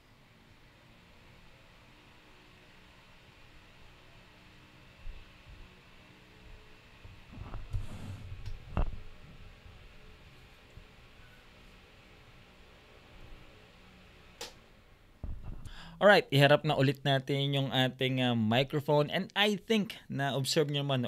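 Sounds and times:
electric fan running: 0.0s - 16.0s
microphone handling thumps: 7.1s - 9.4s, 15.2s - 15.8s.

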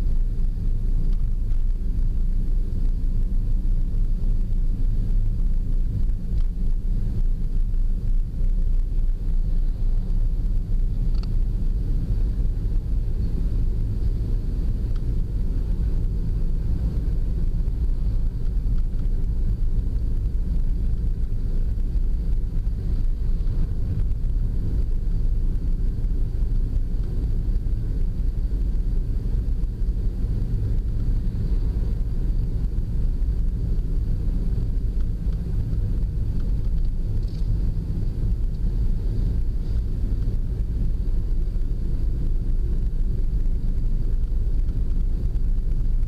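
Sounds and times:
car road and engine rumble: 0.0s - 46.0s.

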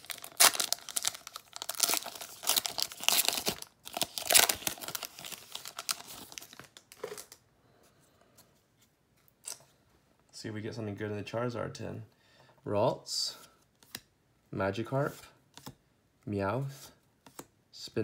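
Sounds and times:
foil wrapper tearing and crinkling: 0.0s - 7.4s.

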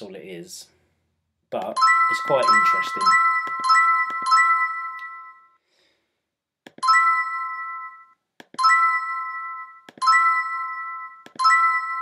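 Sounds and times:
bright ringing chime: 1.8s - 5.6s.

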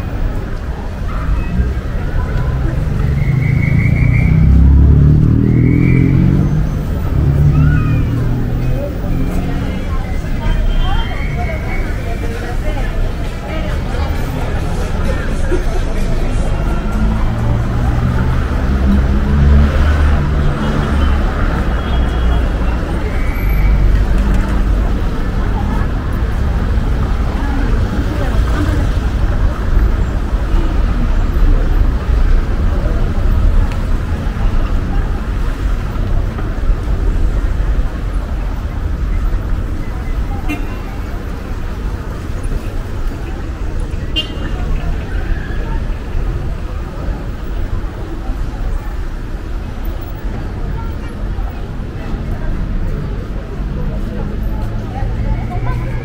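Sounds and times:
cars on a cobbled street: 0.0s - 56.0s
passers-by talking: 0.0s - 56.0s.

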